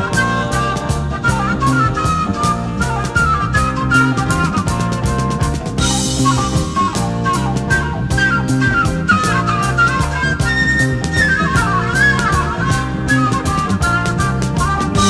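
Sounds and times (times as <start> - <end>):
flute melody: 0.0 - 15.0
rock band playing: 0.0 - 15.0.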